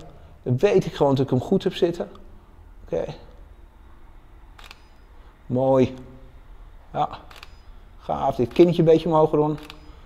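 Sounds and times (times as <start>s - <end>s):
camera shutter double click: 4.6s - 5.1s, 7.2s - 7.7s, 8.5s - 8.8s, 9.5s - 10.0s.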